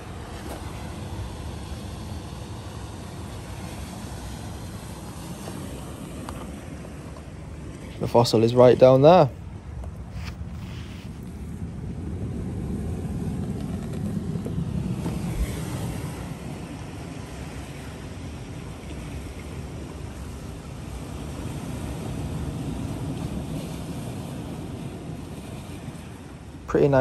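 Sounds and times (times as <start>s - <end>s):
sea waves on rocky shore: 0.0s - 27.0s
wind rumbling on microphone: 0.0s - 27.0s.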